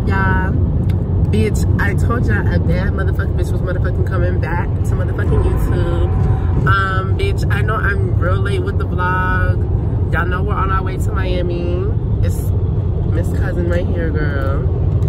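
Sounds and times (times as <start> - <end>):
woman talking: 0.0 - 0.6, 1.3 - 12.5, 13.1 - 14.7
car driving rumble: 0.0 - 15.0.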